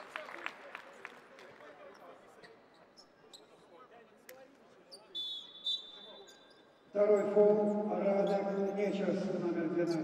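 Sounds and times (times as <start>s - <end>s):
faint crowd noise: 0.0s - 10.0s
referee's whistle blasts: 5.1s - 6.5s.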